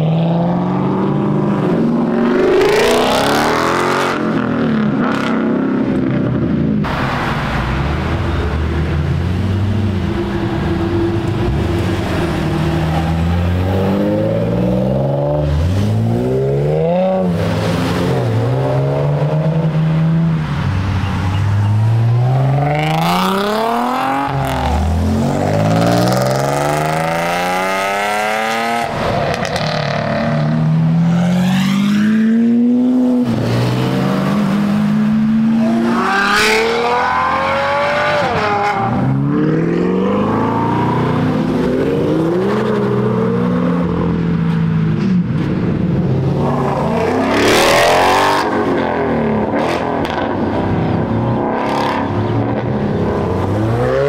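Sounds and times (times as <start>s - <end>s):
performance car engines accelerating: 0.0s - 54.0s.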